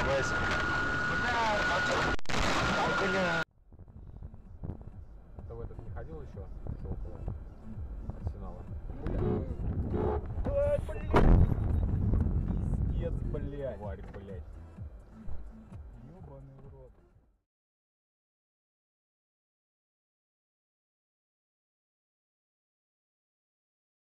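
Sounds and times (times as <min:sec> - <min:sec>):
vehicle road rumble: 0:00.0 - 0:17.2
loud thump: 0:11.1 - 0:12.3.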